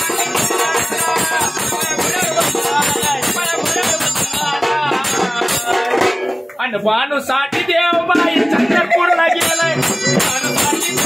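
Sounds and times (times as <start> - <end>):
person singing devotional song: 0.0 - 6.2, 8.0 - 11.0
rattling hand percussion: 0.0 - 6.6, 7.5 - 11.0.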